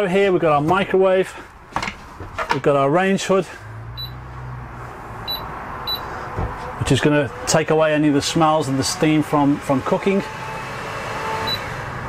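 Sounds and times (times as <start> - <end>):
short electronic beeps: 4.0 - 4.2, 5.3 - 6.1.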